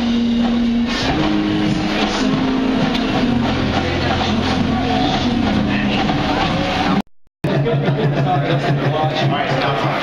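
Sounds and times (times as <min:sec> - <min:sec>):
rock band playing: 0:00.0 - 0:07.0.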